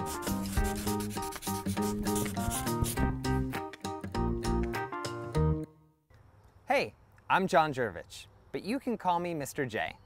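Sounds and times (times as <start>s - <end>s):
marker scratching on paper: 0.0s - 3.1s.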